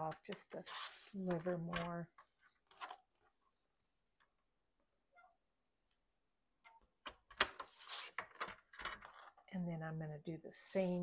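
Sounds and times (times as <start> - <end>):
paper rustling: 0.6 - 4.2, 7.6 - 8.4.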